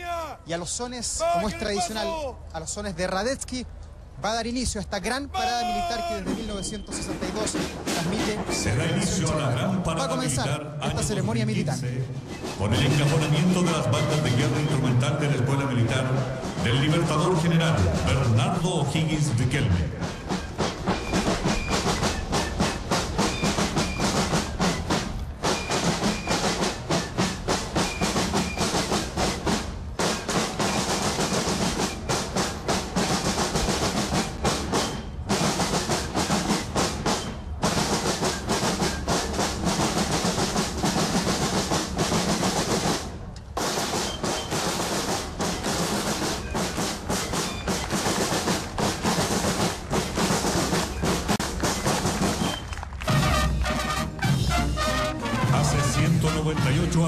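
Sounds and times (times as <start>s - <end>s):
snare drums marching cadence: 0.0s - 3.8s, 5.4s - 57.0s.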